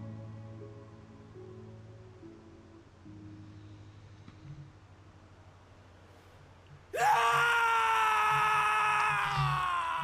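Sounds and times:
person screaming: 7.0 - 10.0.

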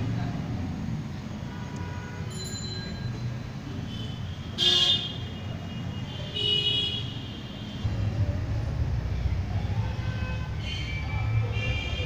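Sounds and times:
low engine rumble: 7.8 - 12.0.

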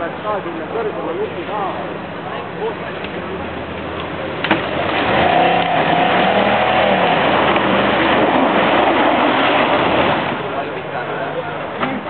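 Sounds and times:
pickup engine revving: 1.8 - 11.2.

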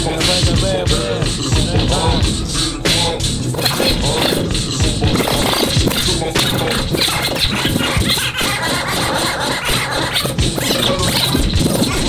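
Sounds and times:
hip hop beat: 0.0 - 12.0
turntable scratching: 0.0 - 12.0.

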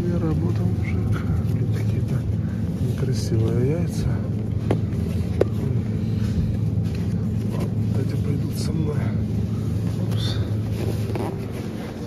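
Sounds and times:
supermarket background hum: 0.0 - 12.0.

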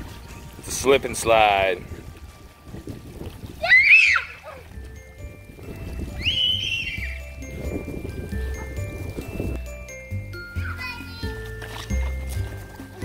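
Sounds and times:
light music with chiming tones: 0.0 - 13.0
water splashing: 0.0 - 13.0
child squealing: 3.6 - 4.6, 6.2 - 7.2.

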